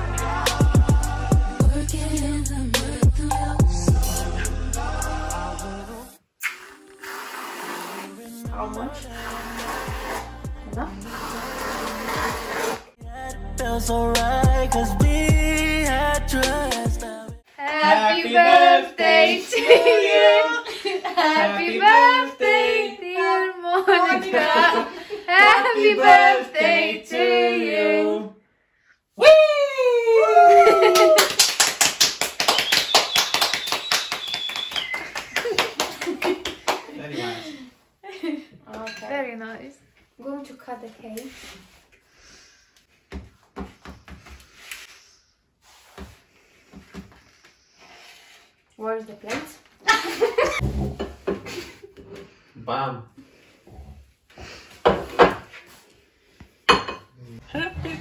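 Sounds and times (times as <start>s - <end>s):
hands clapping applause: 30.7s - 37.0s.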